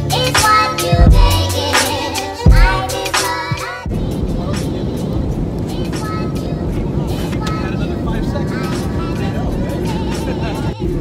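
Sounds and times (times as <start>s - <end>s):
airliner cabin drone: 0.0s - 11.0s
faint voices: 3.9s - 11.0s.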